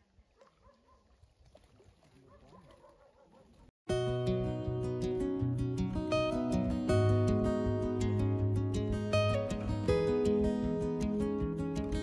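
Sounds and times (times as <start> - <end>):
acoustic guitar music: 3.9 - 12.0.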